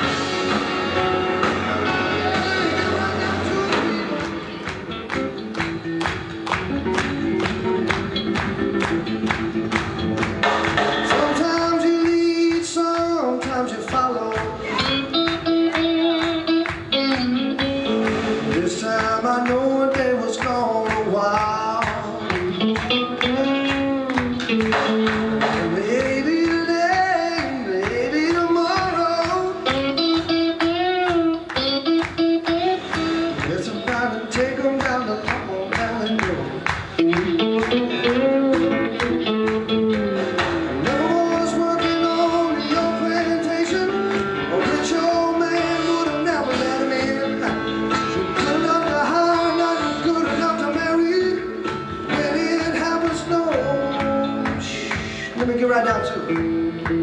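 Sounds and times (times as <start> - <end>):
bass guitar: 0.0 - 57.0
drums: 0.0 - 57.0
electric guitar: 0.0 - 57.0
keyboard: 0.0 - 57.0.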